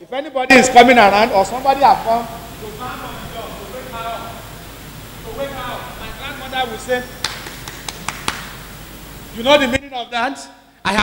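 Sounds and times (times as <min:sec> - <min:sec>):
faint hiss: 0:00.0 - 0:11.0
sharp taps: 0:07.2 - 0:08.6.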